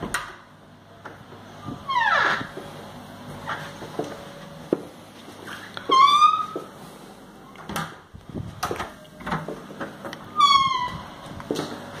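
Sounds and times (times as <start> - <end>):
door hinge squealing: 1.9 - 2.5, 5.9 - 6.6, 10.3 - 11.0.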